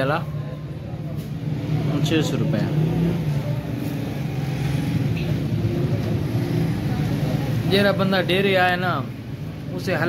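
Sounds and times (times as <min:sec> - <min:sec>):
men talking indistinctly: 0:00.0 - 0:00.5, 0:01.8 - 0:03.1, 0:07.5 - 0:10.0.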